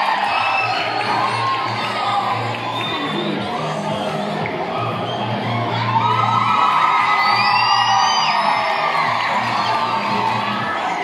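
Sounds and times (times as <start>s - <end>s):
children cheering and whooping: 0.0s - 11.0s
music with steady bass line: 0.0s - 11.0s.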